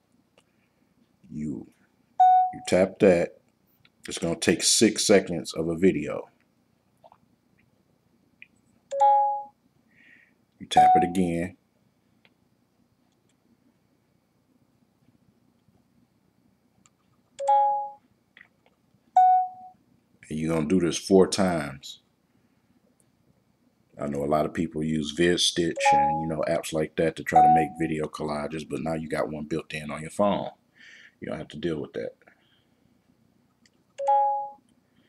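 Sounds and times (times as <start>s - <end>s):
electronic chime from phone speaker: 10.8s - 11.2s, 25.8s - 26.3s, 34.0s - 34.6s
two-note electronic camera chime: 34.0s - 34.6s.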